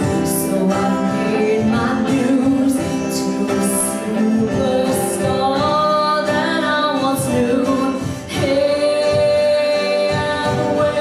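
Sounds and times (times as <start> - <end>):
instrumental backing: 0.0 - 11.0
woman singing into a microphone: 0.0 - 11.0.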